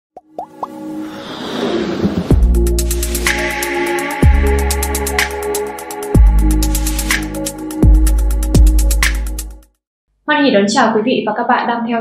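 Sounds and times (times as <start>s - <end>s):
swelling riser effect: 0.6s - 6.1s.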